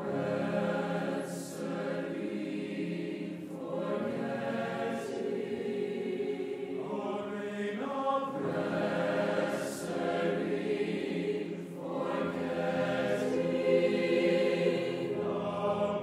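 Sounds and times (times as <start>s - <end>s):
mixed choir singing: 0.0s - 16.0s.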